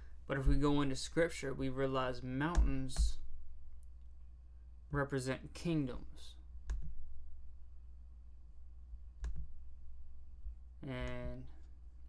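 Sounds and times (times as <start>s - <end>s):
low steady hum: 0.0s - 12.0s
man speaking: 0.3s - 3.2s, 4.9s - 6.4s, 10.8s - 11.6s.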